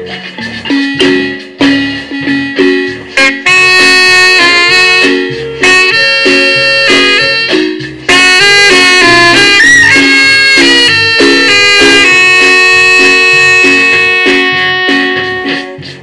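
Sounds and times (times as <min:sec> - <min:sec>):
marimba: 0:00.0 - 0:03.4
saxophones playing melody: 0:00.0 - 0:15.9
electric bass: 0:00.0 - 0:16.0.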